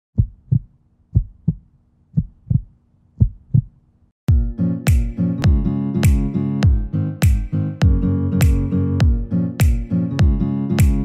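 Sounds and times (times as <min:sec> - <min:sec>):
heartbeat double thumps: 0:00.1 - 0:04.4.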